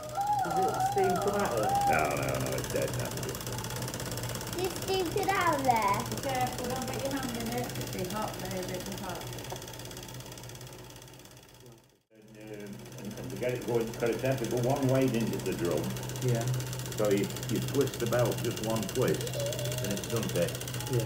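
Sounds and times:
voices: 0.0s - 3.6s, 4.6s - 9.3s, 12.2s - 21.0s
toy steam engine chattering: 0.0s - 11.1s, 12.5s - 21.0s.

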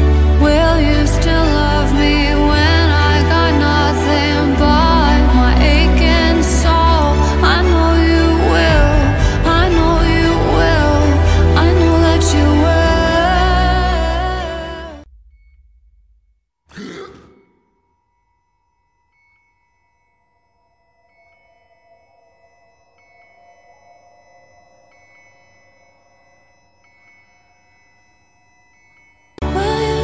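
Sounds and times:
grunt-like vocal sound: 16.7s - 17.6s.

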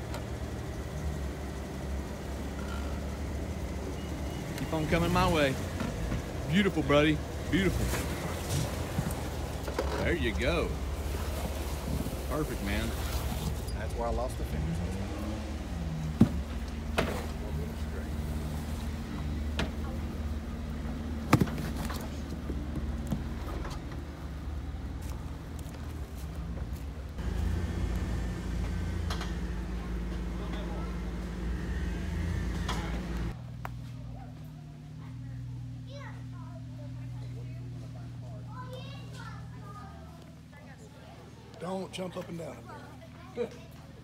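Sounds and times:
engine running low: 0.0s - 40.7s.

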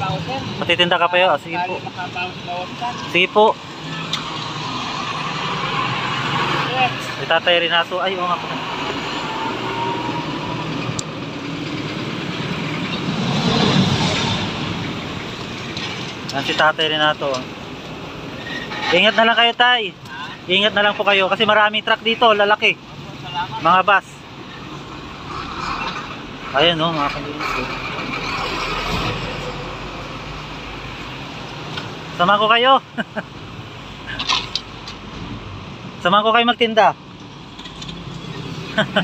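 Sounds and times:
heavy vehicles passing: 0.0s - 39.0s.

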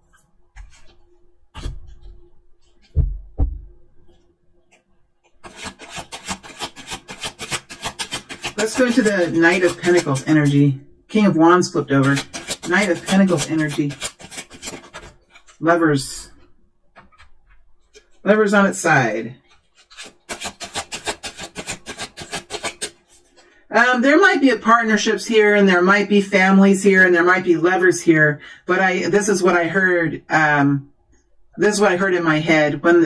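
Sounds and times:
cards being shuffled: 5.3s - 10.6s, 11.9s - 15.6s, 17.0s - 18.2s, 19.4s - 23.4s.

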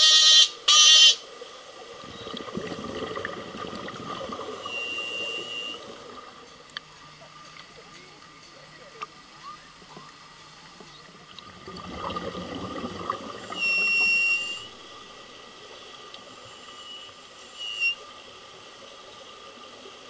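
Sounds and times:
underwater bubbling water: 1.6s - 8.4s, 9.0s - 16.5s
high whistle-like tone: 4.6s - 6.0s, 13.4s - 14.8s, 16.4s - 18.2s.

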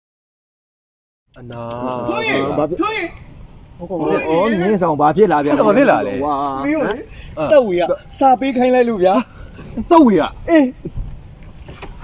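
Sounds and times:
man speaking: 1.4s - 3.2s, 3.8s - 10.8s.

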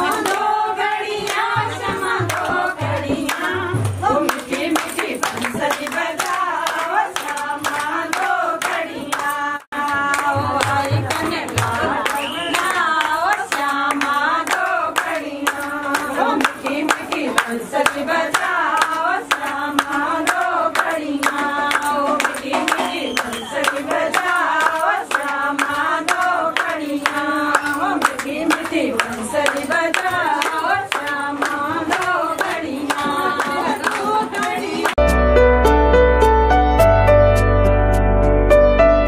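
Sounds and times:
hand claps: 0.0s - 35.0s
women singing devotional song: 0.0s - 35.0s.

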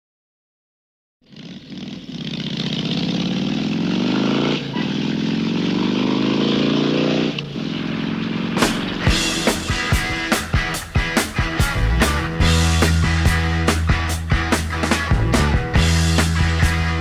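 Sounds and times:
two-stroke bicycle engine running: 1.3s - 4.0s
rock music drum hits: 8.5s - 17.0s.

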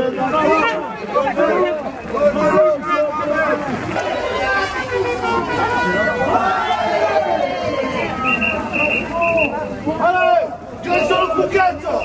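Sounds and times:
crowd chanting and shouting: 0.0s - 12.0s.

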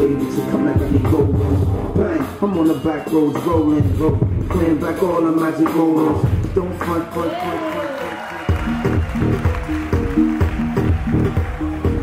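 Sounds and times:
instrumental beat with bass riff: 0.0s - 7.4s, 8.5s - 12.0s
rapped hip hop track: 0.0s - 12.0s.

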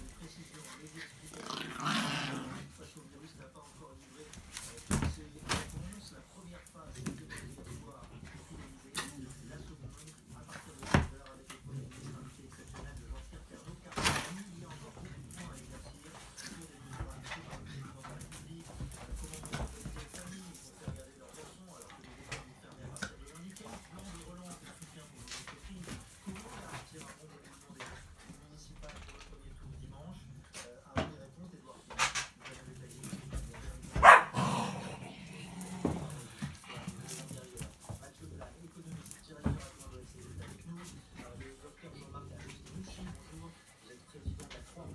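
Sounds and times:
dogs growling: 0.9s - 2.8s, 34.0s - 37.2s
dog barking: 34.0s - 34.5s.

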